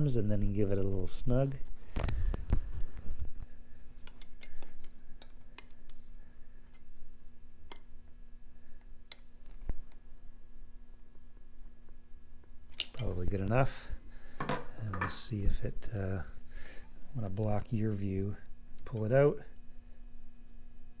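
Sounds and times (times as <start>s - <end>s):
faint steady hum: 0.0s - 21.0s
light clicks of handled parts: 4.0s - 6.0s.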